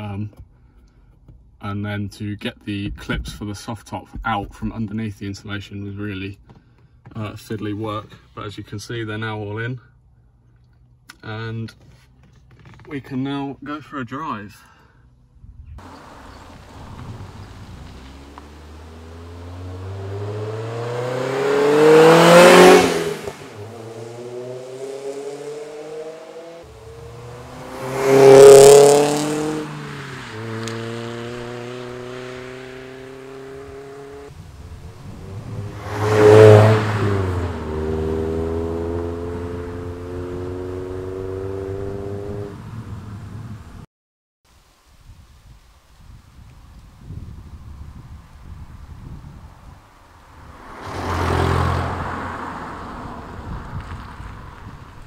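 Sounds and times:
sports car driving past: 15.8s - 43.5s, 50.4s - 54.8s.

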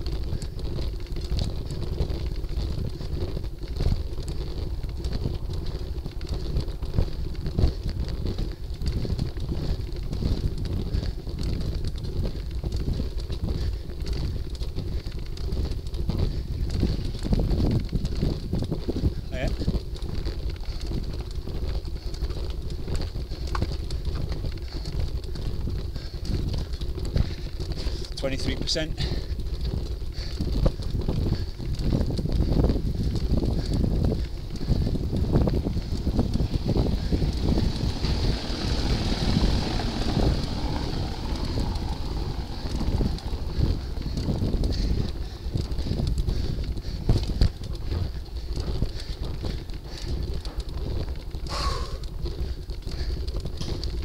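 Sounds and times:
bicycle rattling over cobbles: 0.0s - 54.0s
wind on microphone: 0.0s - 54.0s.

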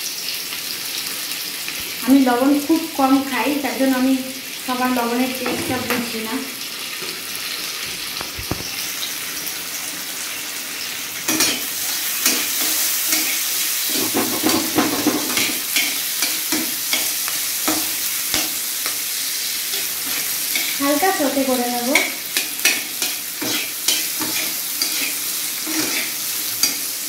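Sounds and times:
vegetables sizzling in oil: 0.0s - 27.0s
metal spatula scraping a pan: 11.3s - 19.0s, 19.7s - 21.2s, 21.9s - 26.9s.

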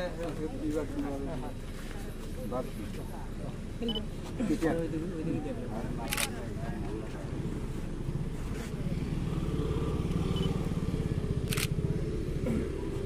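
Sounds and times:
engine running: 6.1s - 13.0s.

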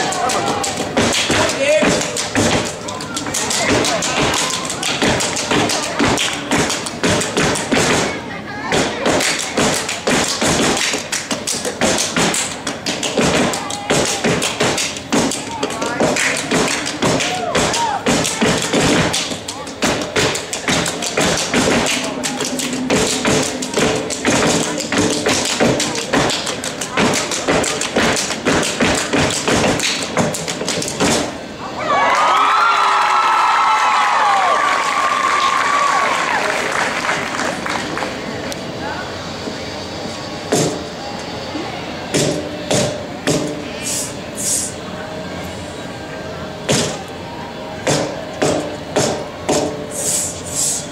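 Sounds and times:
hand claps: 0.0s - 8.1s, 8.8s - 31.3s
foot stomps: 8.7s - 31.3s.

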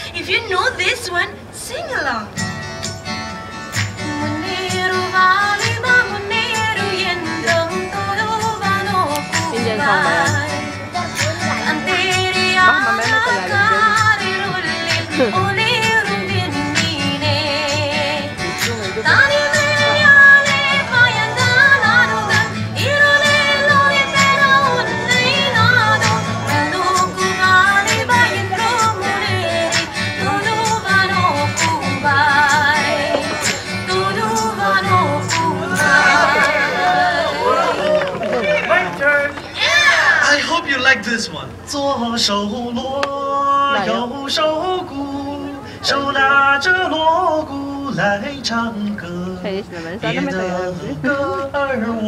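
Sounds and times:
music with guitar and beat: 2.3s - 37.0s
person singing: 4.0s - 38.0s, 49.0s - 52.0s.

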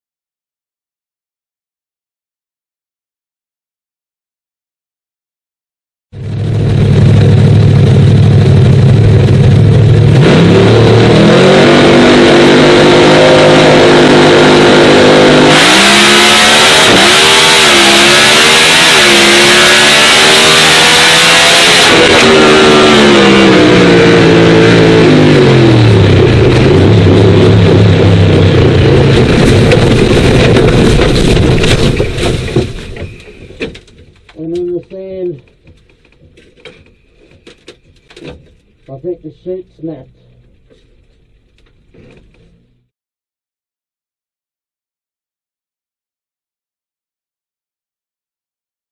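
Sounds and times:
drag racing car engine revving: 6.2s - 33.0s.

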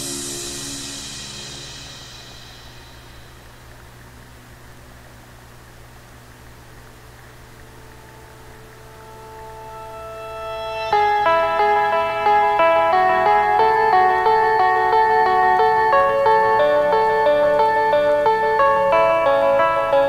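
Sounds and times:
music track: 0.0s - 3.8s, 7.7s - 20.0s
faint hiss: 0.0s - 20.0s
low steady hum: 0.0s - 20.0s.

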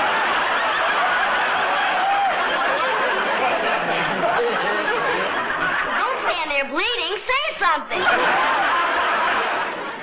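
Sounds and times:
studio audience laughing: 0.0s - 10.0s.

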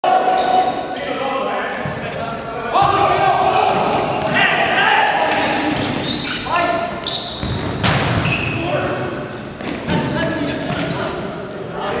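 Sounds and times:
people shouting in sports hall: 0.0s - 1.9s, 2.6s - 7.0s.

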